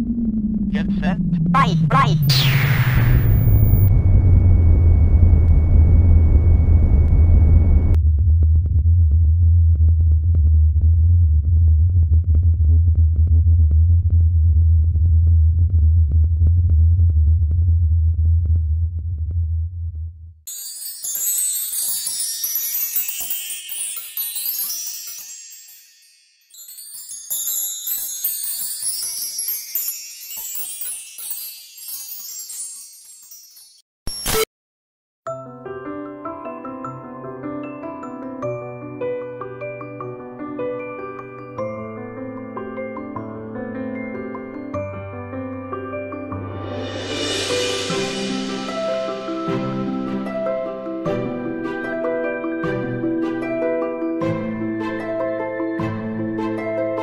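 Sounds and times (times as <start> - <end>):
deep synthesized rumble: 2.4 - 20.3
tinkling chimes music: 20.5 - 33.9.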